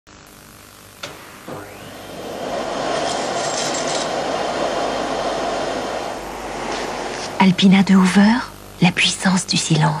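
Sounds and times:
vacuum cleaner running: 0.9 - 9.0
vacuum cleaner switch click: 1.0 - 1.7.

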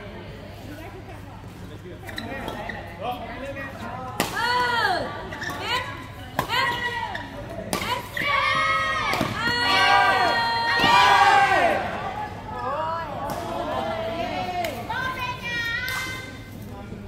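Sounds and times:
voices shouting: 7.9 - 12.8.

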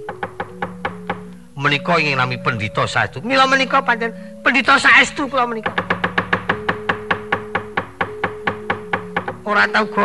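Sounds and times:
rapid wooden knocking: 0.0 - 1.3, 5.5 - 9.9
low held gamelan tones: 0.0 - 10.0.

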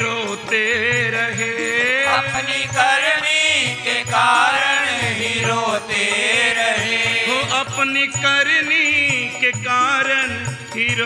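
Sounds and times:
harmonium: 0.0 - 11.0
man singing: 0.0 - 11.0
steady drum beat: 0.0 - 11.0.

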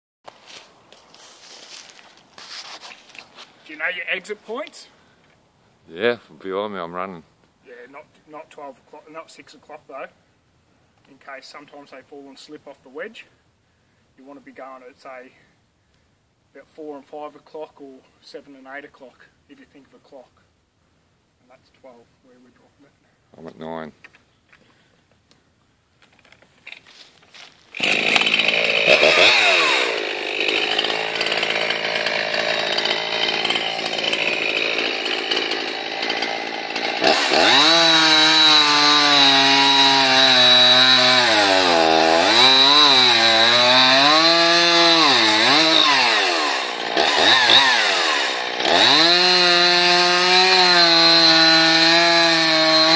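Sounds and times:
chainsaw starting and revving: 27.7 - 52.9.

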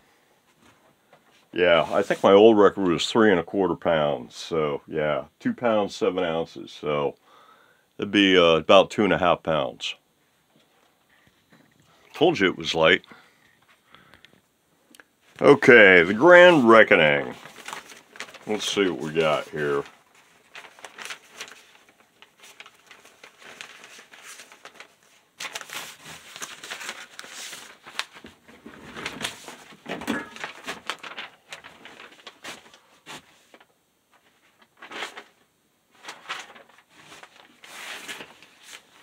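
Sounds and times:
rustling and crinkling: 0.5 - 2.4, 15.2 - 39.0.

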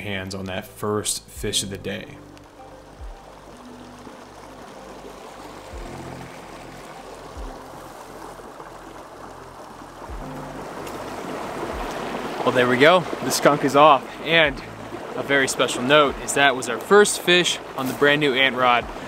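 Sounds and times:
stream water flowing: 1.4 - 19.0.

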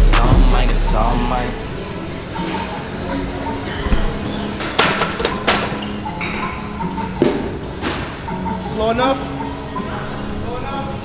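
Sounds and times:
hip-hop music: 0.0 - 11.0.

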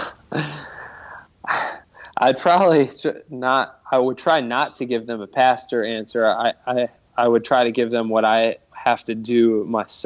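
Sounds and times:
man laughing softly: 0.0 - 2.0.

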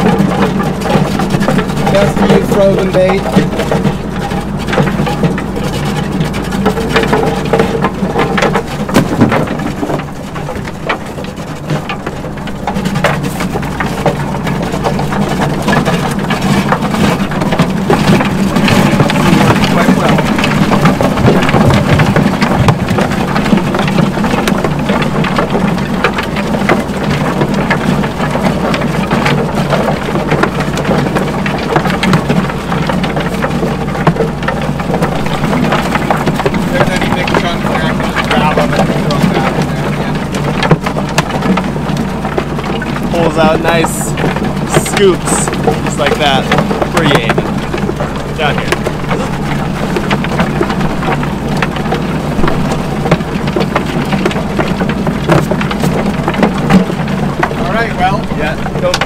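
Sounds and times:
crunching clatter of bait grinding: 0.0 - 59.0
steady mechanical drone: 0.0 - 59.0.

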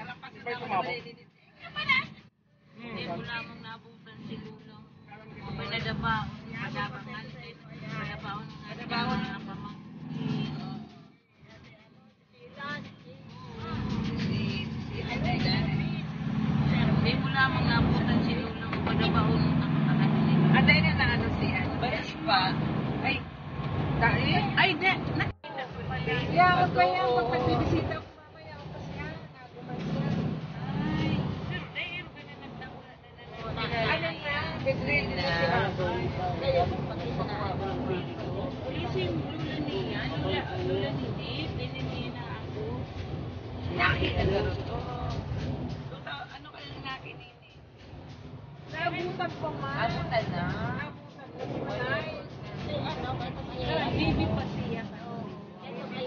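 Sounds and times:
passengers talking: 0.0 - 56.0
vehicle engine and road drone: 0.0 - 56.0.

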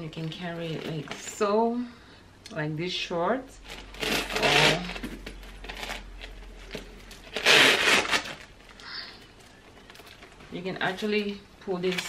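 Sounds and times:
purse rustling: 3.6 - 8.7.

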